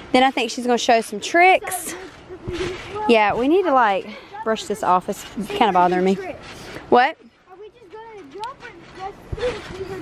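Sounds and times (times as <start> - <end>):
quiet talk: 0.5 - 10.0.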